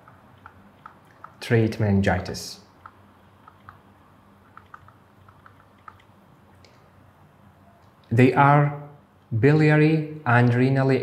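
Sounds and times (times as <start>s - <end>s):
stylus tapping on tablet: 0.0s - 1.4s, 2.8s - 3.8s, 4.4s - 6.1s.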